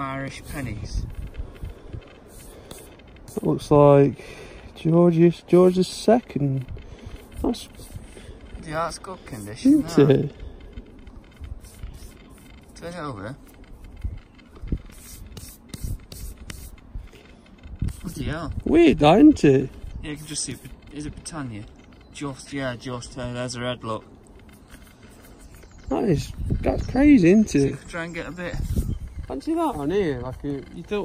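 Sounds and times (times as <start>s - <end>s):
fingertip rubbing soil off coin: 0.0s - 4.1s, 5.1s - 10.4s, 11.3s - 21.7s, 22.3s - 27.8s.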